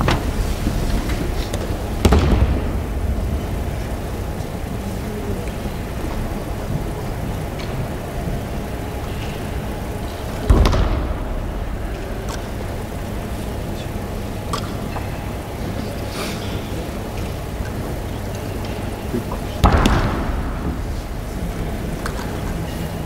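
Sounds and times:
low background rumble: 0:00.0 - 0:15.9.

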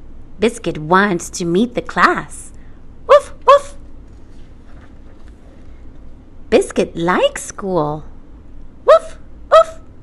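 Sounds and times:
woman imitating puppy bark: 0:03.1 - 0:03.8, 0:08.9 - 0:09.9.

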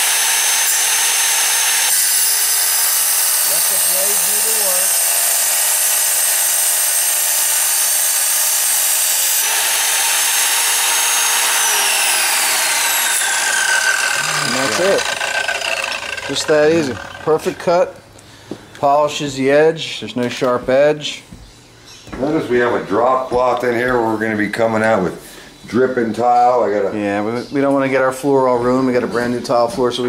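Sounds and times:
wet tile saw whining: 0:00.0 - 0:18.0.

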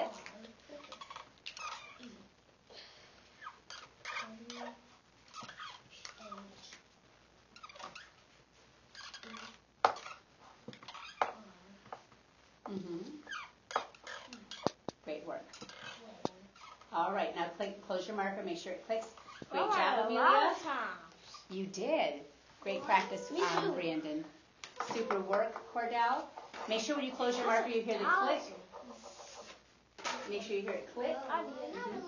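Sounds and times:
children's voices murmuring: 0:22.7 - 0:24.0, 0:30.7 - 0:32.0.

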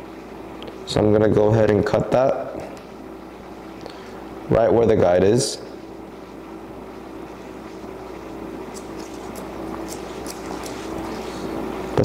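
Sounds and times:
room hum: 0:00.0 - 0:12.0
shears snipping hair: 0:08.6 - 0:11.5.

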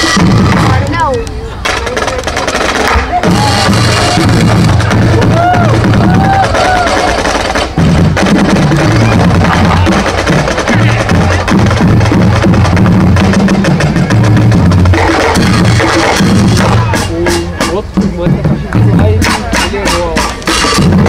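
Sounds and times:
bass drums beating: 0:00.0 - 0:21.0
snare drums beating: 0:00.0 - 0:21.0.

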